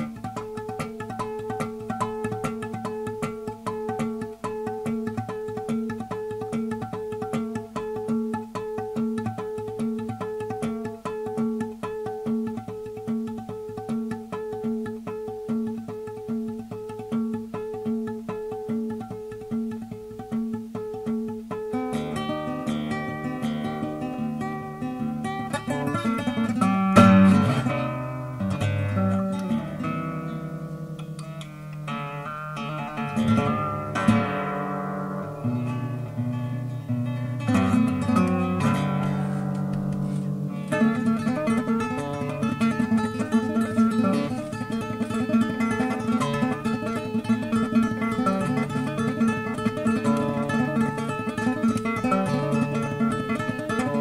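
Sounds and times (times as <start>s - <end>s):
solo guitar playing: 0.0s - 54.0s.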